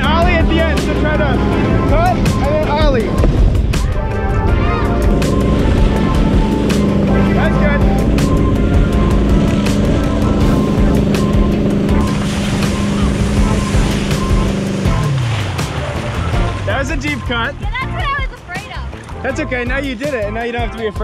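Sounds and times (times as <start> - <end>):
boat engine running: 0.0 - 21.0
rushing water and spray: 0.0 - 21.0.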